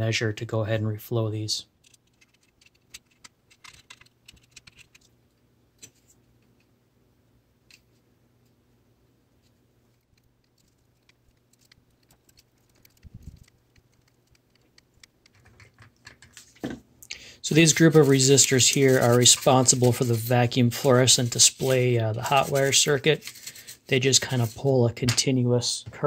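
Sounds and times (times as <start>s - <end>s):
hand tools clicking and tapping: 10.1s - 16.4s.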